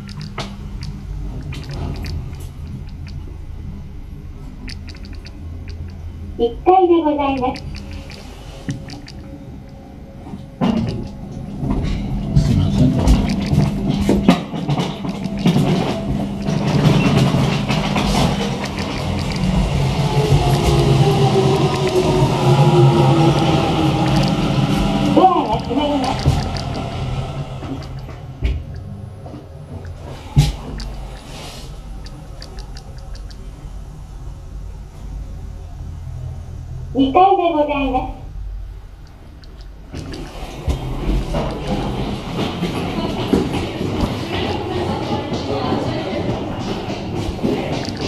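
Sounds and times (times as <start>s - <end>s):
elevator doors and drive clattering: 0.0s - 36.4s, 37.0s - 48.0s
steady low hum: 0.0s - 44.4s.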